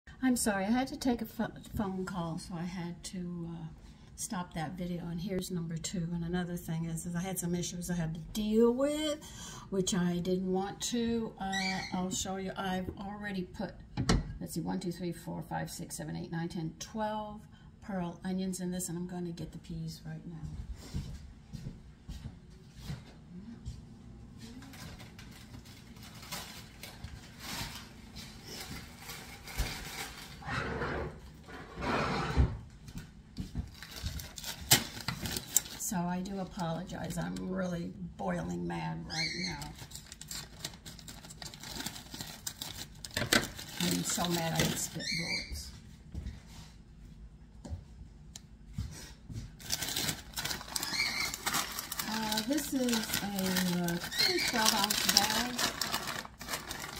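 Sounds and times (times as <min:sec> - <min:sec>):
low steady hum: 0:00.1 - 0:56.9
plastic bag rustling: 0:24.4 - 0:30.5, 0:33.6 - 0:36.6, 0:39.4 - 0:45.4, 0:49.5 - 0:56.9.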